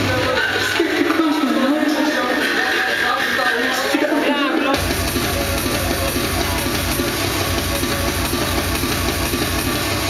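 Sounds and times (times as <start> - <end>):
industrial drum and bass music: 0.0 - 10.0.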